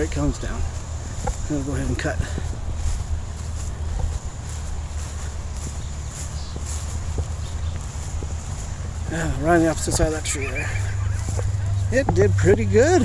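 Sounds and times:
faint ticks: 0:00.0 - 0:10.2
wind rumbling on microphone: 0:00.0 - 0:13.0.

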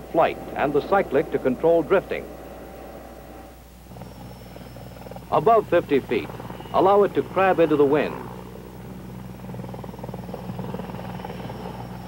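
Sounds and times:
faint high whine: 0:00.0 - 0:12.0
helicopter rotor thrum: 0:00.0 - 0:12.0.

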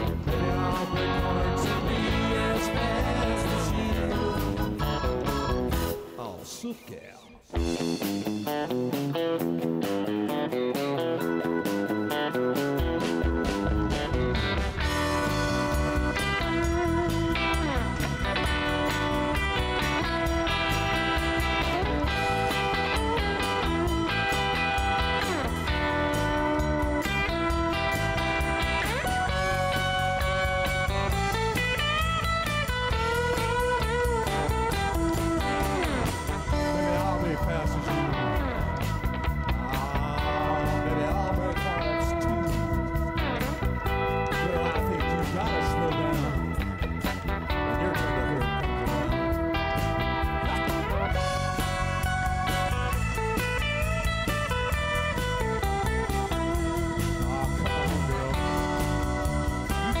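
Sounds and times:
electric guitar melody: 0:00.0 - 0:06.2, 0:07.4 - 1:00.0
bass guitar: 0:00.0 - 0:06.5, 0:07.3 - 1:00.0
drums: 0:00.0 - 1:00.0.

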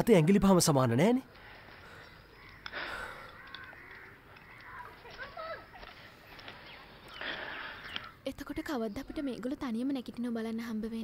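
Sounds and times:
crows cawing: 0:01.3 - 0:08.2.

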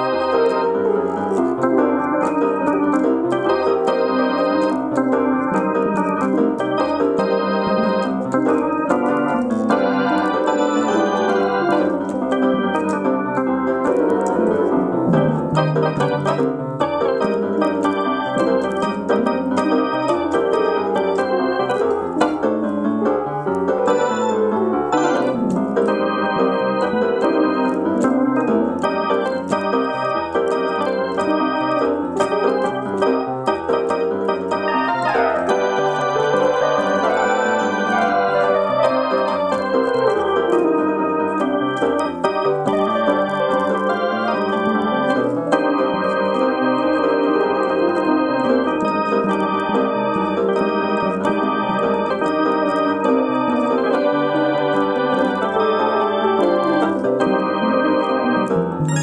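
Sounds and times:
electric piano keyboard playing: 0:00.0 - 0:59.0.

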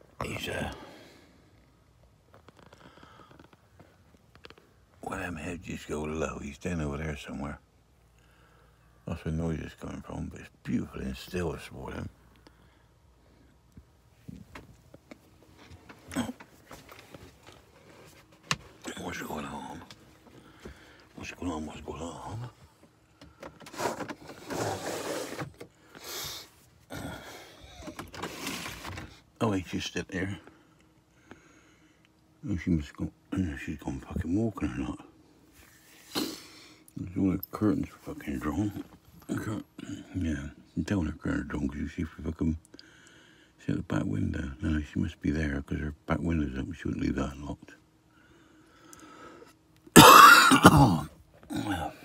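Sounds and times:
soft breath: 0:02.6 - 0:04.1.

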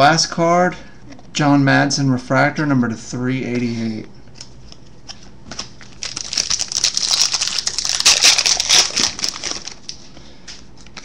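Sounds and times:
foil wrapper crinkling: 0:05.5 - 0:10.0.

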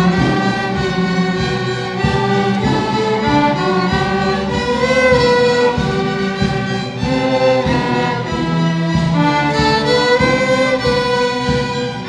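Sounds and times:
string orchestra sustained chords: 0:00.0 - 0:12.0.

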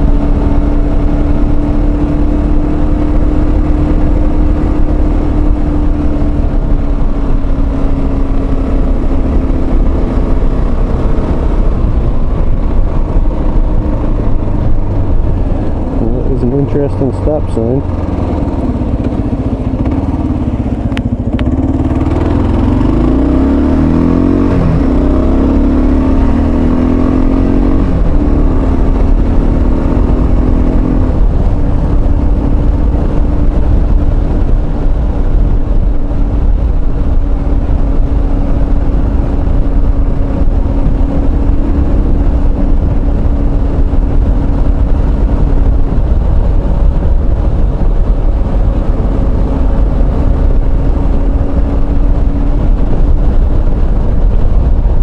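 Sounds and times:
motorcycle engine accelerating: 0:00.0 - 0:55.0
wind rush: 0:00.0 - 0:55.0.

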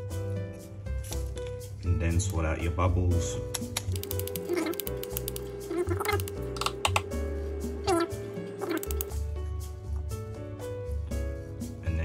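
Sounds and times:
background music: 0:00.0 - 0:12.0
fingers flicking plastic syringe: 0:03.6 - 0:07.1.

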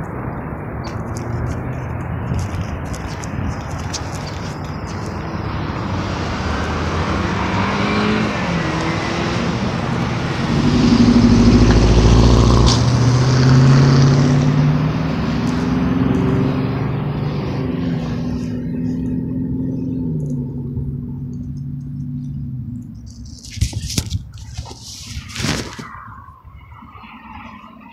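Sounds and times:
road traffic hiss: 0:00.0 - 0:20.6
vehicle engine accelerating: 0:00.0 - 0:26.1.

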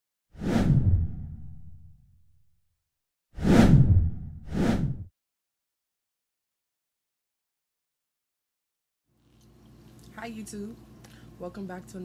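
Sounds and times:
deep rumble: 0:00.6 - 0:02.3, 0:03.6 - 0:05.1.

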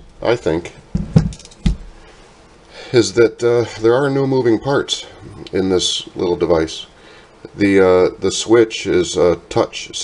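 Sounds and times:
man speaking: 0:00.2 - 0:00.8, 0:02.9 - 0:10.0.

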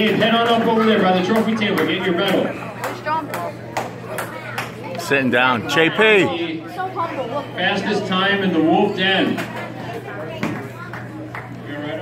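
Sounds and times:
murmured voices: 0:00.0 - 0:12.0
hand claps: 0:01.4 - 0:04.8.

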